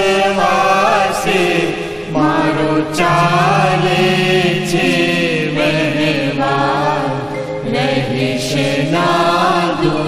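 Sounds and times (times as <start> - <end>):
person singing a hymn: 0.0 - 10.0
steady low drone: 1.7 - 8.8.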